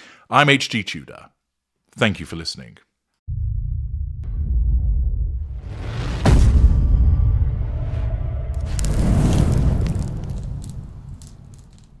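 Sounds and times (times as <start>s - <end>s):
deep booming low rumble: 3.3s - 11.3s
faint crackles: 8.6s - 12.0s.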